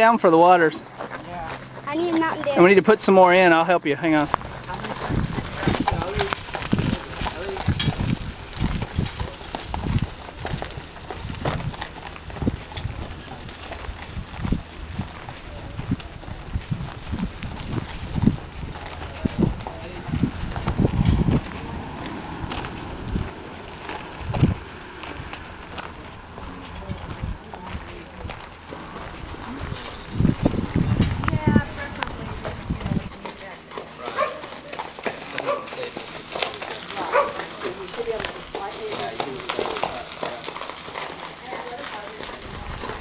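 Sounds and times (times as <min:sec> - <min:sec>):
horse hooves clopping: 0:00.0 - 0:43.0.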